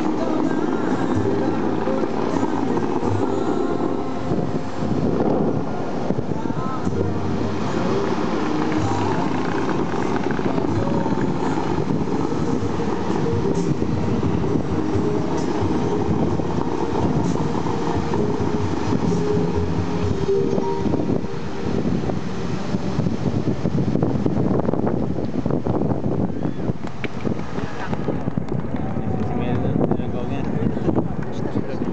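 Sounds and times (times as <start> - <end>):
faint music: 0.0 - 24.6
fountain water jets roaring: 0.0 - 29.8.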